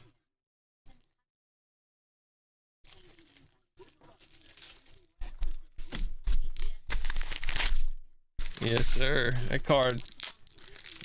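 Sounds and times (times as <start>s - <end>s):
foil wrapper tearing and crinkling: 2.9s - 5.4s, 6.9s - 11.0s.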